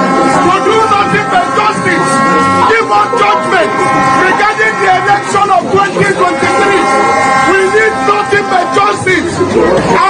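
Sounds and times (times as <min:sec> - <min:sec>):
busy street: 0:00.0 - 0:10.0
horn long steady note: 0:00.0 - 0:10.0
man talking: 0:00.4 - 0:10.0.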